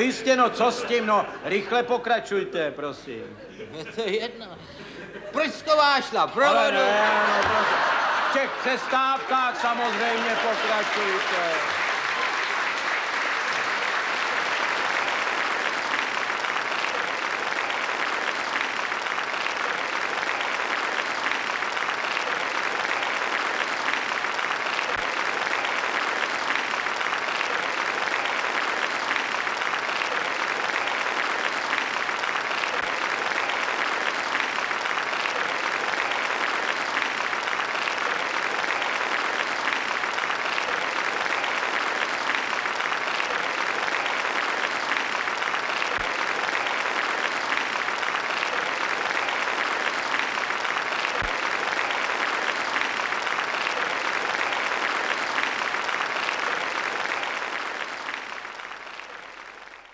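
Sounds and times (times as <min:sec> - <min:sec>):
audience applauding: 0:00.0 - 0:02.0, 0:05.3 - 0:59.9.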